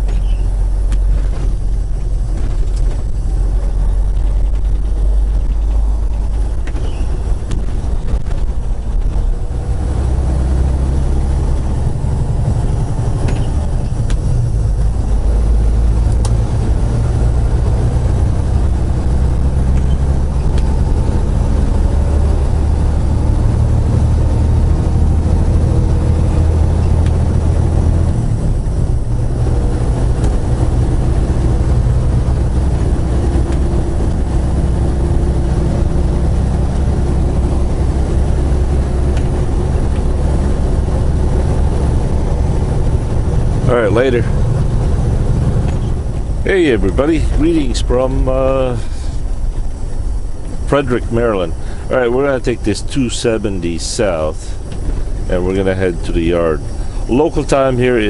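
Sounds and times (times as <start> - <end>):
road noise: 0.0 - 58.0
truck diesel engine drone: 0.0 - 58.0.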